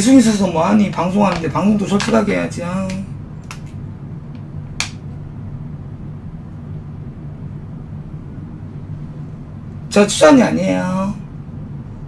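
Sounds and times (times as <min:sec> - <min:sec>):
low room hum: 0:00.0 - 0:12.0
makeup items clicking: 0:01.3 - 0:03.8.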